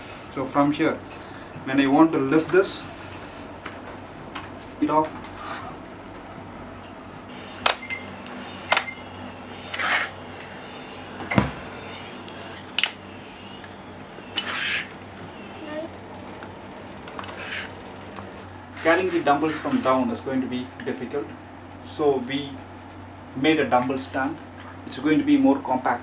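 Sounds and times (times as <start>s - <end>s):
heavy thump: 11.2s - 11.7s
metal sliding scrapes: 17.2s - 17.7s.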